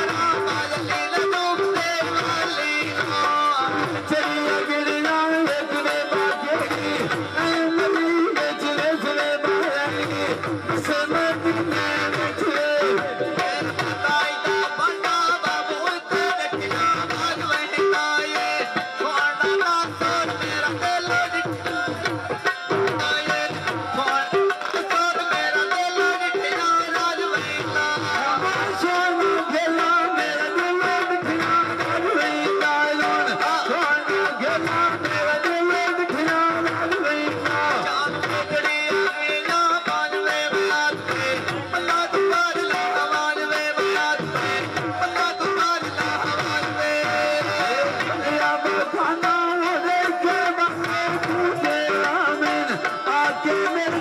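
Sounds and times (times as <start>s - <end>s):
tabla: 0.0s - 54.0s.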